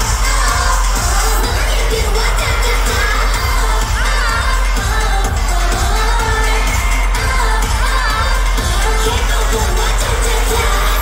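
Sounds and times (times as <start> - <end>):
dance track over arena speakers: 0.0 - 11.0.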